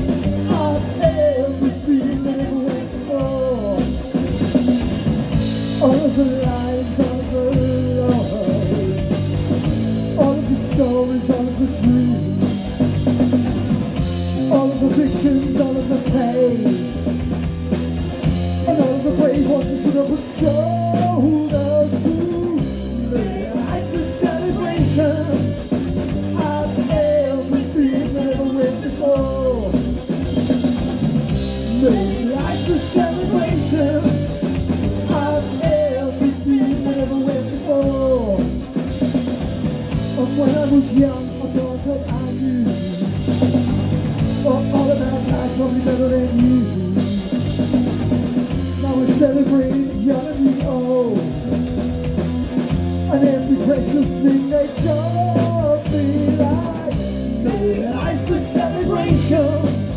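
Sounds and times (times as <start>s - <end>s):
person singing: 0.0s - 4.6s, 5.7s - 13.6s, 14.4s - 17.1s, 18.6s - 30.1s, 31.6s - 38.7s, 40.0s - 43.6s, 44.3s - 47.6s, 48.7s - 51.4s, 53.0s - 59.9s
drum kit: 0.0s - 59.9s
electric bass: 0.0s - 59.9s
electric guitar: 0.0s - 59.9s.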